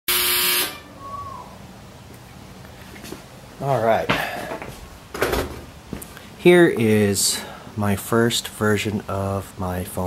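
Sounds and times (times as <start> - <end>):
buzzy horn blast: 0.1 - 0.8.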